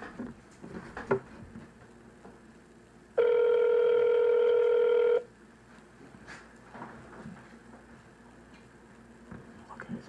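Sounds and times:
telephone ringback tone: 3.2 - 5.3.

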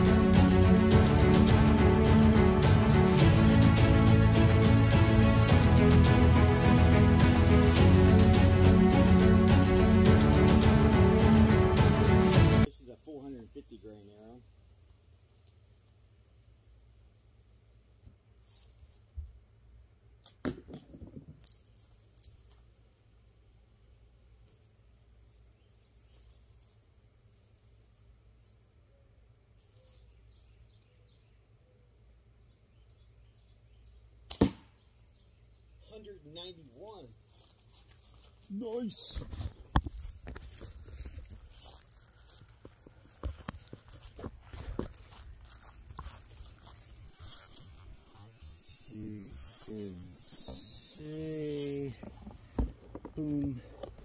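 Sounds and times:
footsteps through grass: 18.4 - 19.2, 24.5 - 28.6, 29.5 - 30.7, 37.0 - 52.5
dull thump: 52.0 - 53.2.

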